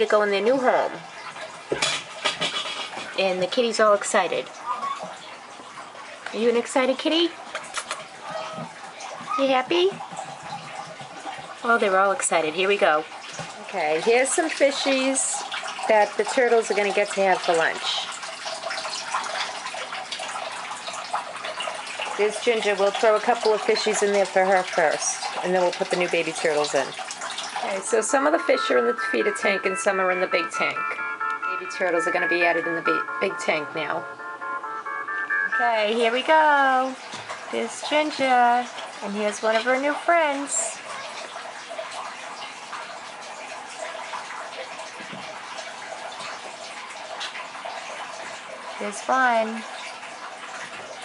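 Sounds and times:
water splashing into a tank: 0.0s - 34.0s, 35.6s - 51.0s
bubbles: 0.0s - 34.2s, 35.1s - 51.0s.

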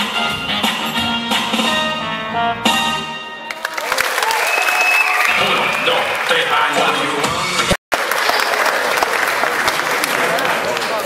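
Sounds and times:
audience applauding: 3.4s - 7.1s, 7.9s - 11.0s.

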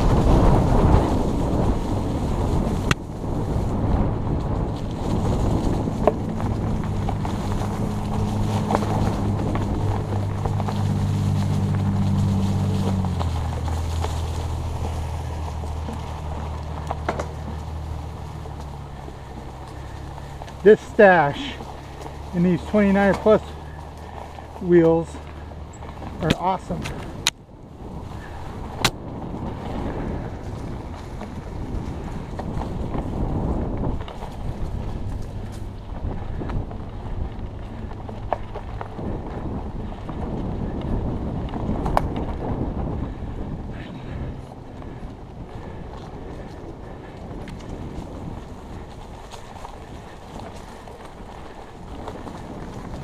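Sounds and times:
bike tyres rolling on dirt: 0.0s - 53.0s
wind buffeting microphone: 0.0s - 53.0s
bike clicks and knocks: 2.5s - 3.1s, 3.8s - 27.4s, 28.1s - 43.0s, 43.7s - 53.0s.

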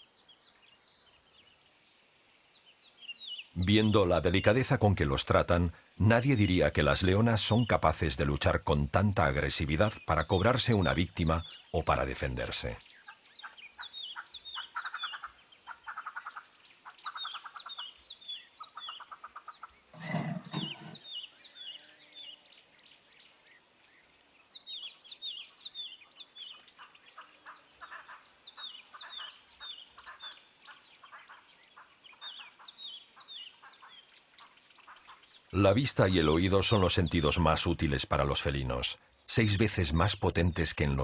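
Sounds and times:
high downward-sliding bird chirps: 12.7s - 41.0s
low loud animal grunt: 20.0s - 21.0s.

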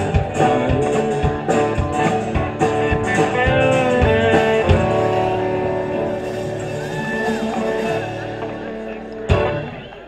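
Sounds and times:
electric guitars holding a chord: 0.0s - 10.0s.

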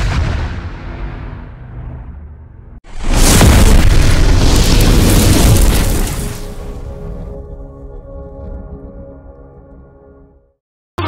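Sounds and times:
deep explosion boom: 0.0s - 7.4s.

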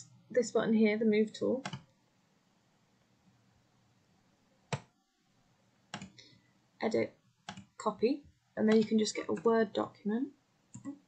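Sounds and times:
computer mouse clicks: 1.6s - 1.9s, 5.9s - 6.2s, 7.5s - 7.7s.

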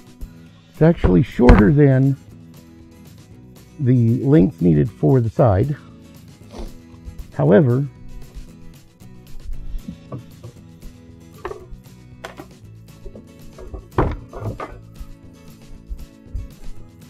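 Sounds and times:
background music: 0.0s - 17.0s
wooden knocks and clatters on table: 9.8s - 10.6s, 11.4s - 14.9s.

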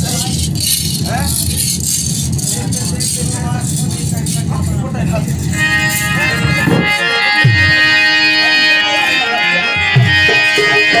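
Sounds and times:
jingling rattles: 0.0s - 5.6s
hand drums: 5.2s - 8.0s, 9.8s - 11.0s
held chord of steady tones: 5.5s - 11.0s.

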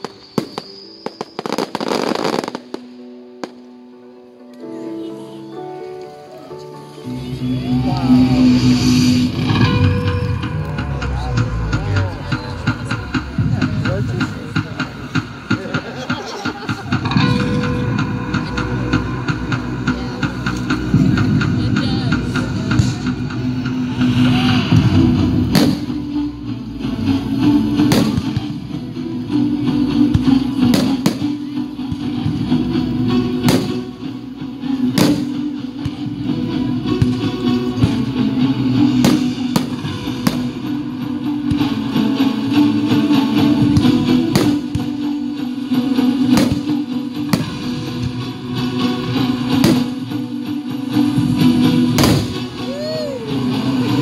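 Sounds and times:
fireworks bursting: 0.0s - 3.7s, 21.8s - 26.4s, 27.7s - 28.5s, 30.2s - 31.5s, 33.4s - 34.0s, 34.8s - 35.5s, 38.9s - 40.7s, 46.2s - 48.2s, 49.4s - 50.1s, 51.9s - 52.6s
loud music: 1.1s - 3.6s, 6.7s - 54.0s.

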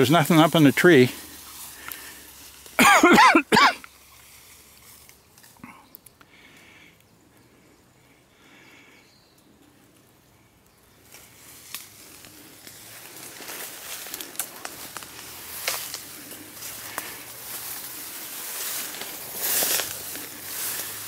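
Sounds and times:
grass swishing: 0.0s - 2.8s, 11.1s - 21.0s
twigs crackling: 0.0s - 3.0s, 3.7s - 7.5s, 8.5s - 21.0s.

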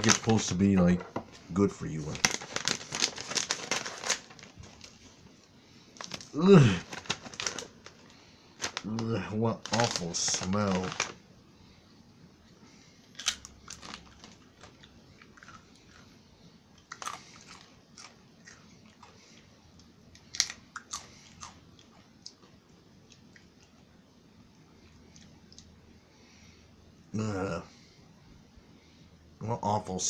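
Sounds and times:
crisp chips crunching: 0.0s - 0.6s, 1.9s - 5.0s, 6.0s - 11.2s, 13.1s - 16.1s, 16.8s - 19.2s, 20.2s - 21.9s
faint chewing: 12.5s - 23.9s, 24.5s - 25.8s.

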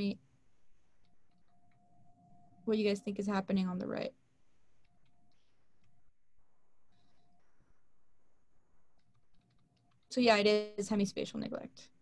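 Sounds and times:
faint keyboard typing clicks: 8.9s - 10.2s.

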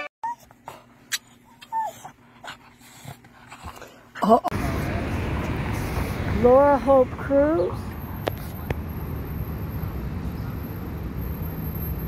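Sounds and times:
dog yelping: 0.0s - 2.6s
dog whimpering: 0.0s - 4.5s
outdoor rush of noise: 4.5s - 12.0s.

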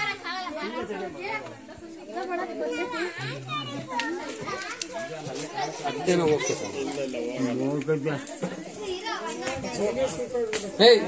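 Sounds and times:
children's voices: 0.0s - 10.6s
voices talking and calling: 0.0s - 11.0s.

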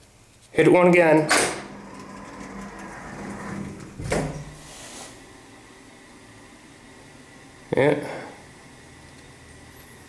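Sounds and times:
elevator door motor hum: 1.0s - 7.8s
door shutting knock: 3.8s - 4.6s.

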